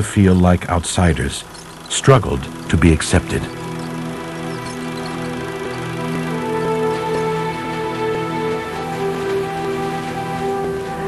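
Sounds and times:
steady rushing hiss: 0.0 - 11.0
soft music with long notes: 1.5 - 11.0.

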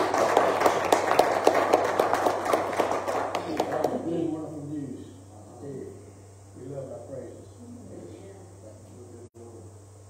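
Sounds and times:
congregation applauding: 0.0 - 4.1.

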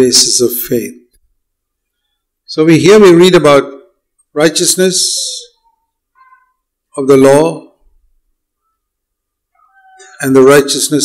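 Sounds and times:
person speaking: 9.6 - 11.0.

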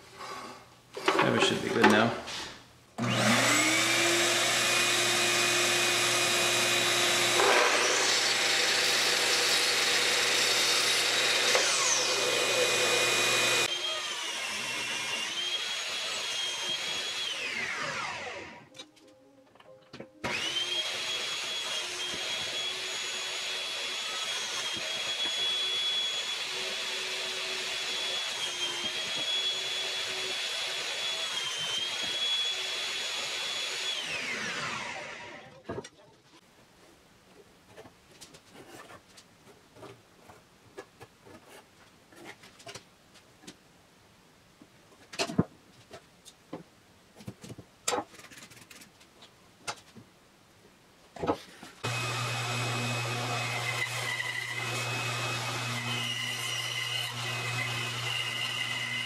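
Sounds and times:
power tool motor high whine: 3.0 - 18.7, 20.2 - 35.4, 51.8 - 59.0
miter saw motor whine: 51.8 - 59.0.

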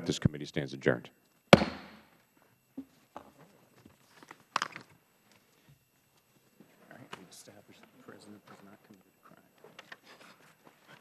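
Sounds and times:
gavel strike: 1.6 - 2.0.

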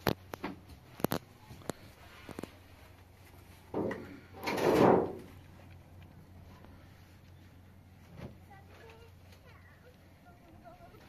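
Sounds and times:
wooden door scraping open: 3.8 - 5.3.

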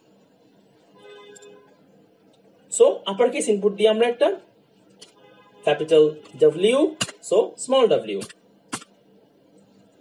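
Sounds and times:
person speaking: 5.7 - 8.4.

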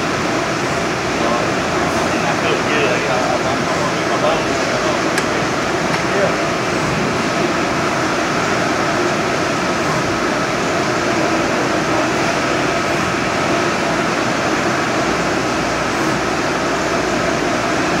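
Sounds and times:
printer whirring and hissing: 0.0 - 18.0.

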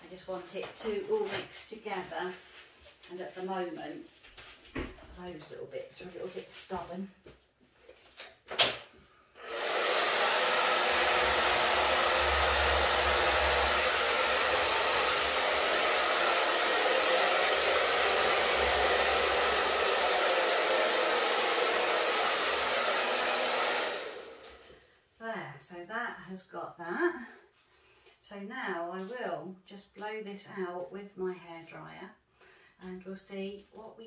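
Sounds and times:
hair dryer blowing: 9.4 - 24.7.

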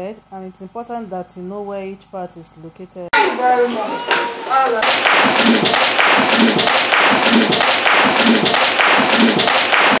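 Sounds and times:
group clapping in rhythm: 4.8 - 10.0.

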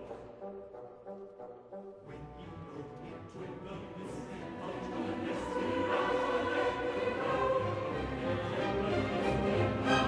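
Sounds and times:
chorus singing: 2.0 - 10.0.

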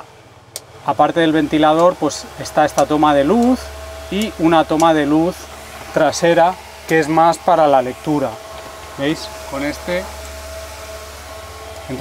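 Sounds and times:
electric fans whirring: 0.0 - 12.0.

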